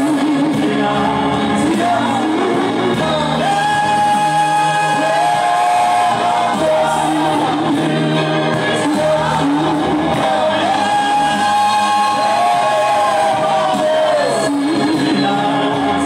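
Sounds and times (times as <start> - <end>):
group singing gospel: 0.0 - 16.0.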